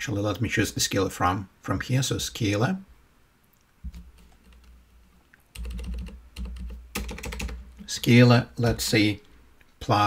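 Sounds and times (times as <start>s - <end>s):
typing on computer keyboard: 5.6s - 7.6s.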